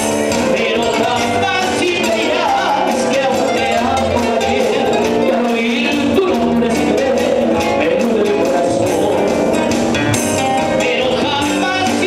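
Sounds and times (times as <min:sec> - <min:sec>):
live folk band with guitars and violin: 0:00.0 - 0:12.0.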